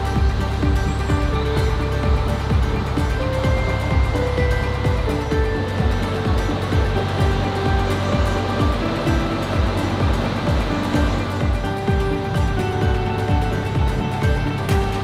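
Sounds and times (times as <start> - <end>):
background music with bass beat: 0.0 - 15.0.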